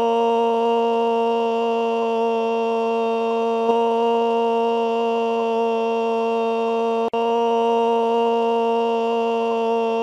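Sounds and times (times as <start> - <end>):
long scream: 0.0 - 10.0.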